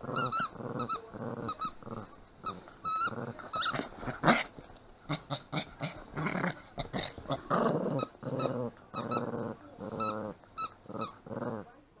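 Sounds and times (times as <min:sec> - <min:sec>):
small dog growling in play: 0:00.0 - 0:11.8.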